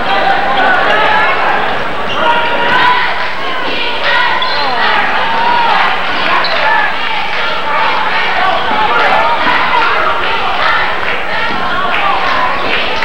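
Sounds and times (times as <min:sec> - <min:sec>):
crowd shouting echoing in hall: 0:00.0 - 0:13.0.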